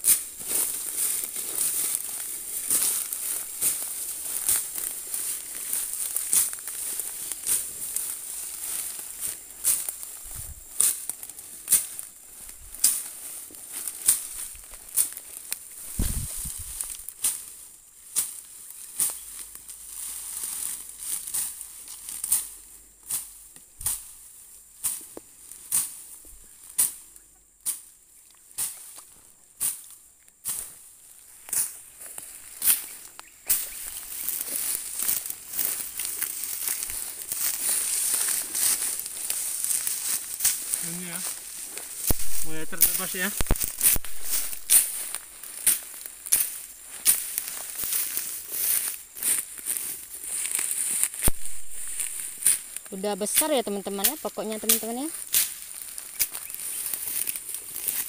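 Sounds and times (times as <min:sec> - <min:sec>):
fern stems crackling underfoot: 0:00.0 - 0:58.0.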